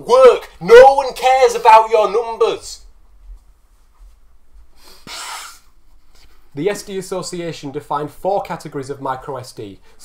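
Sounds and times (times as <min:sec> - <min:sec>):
man blowing nose: 0:04.8 - 0:06.4.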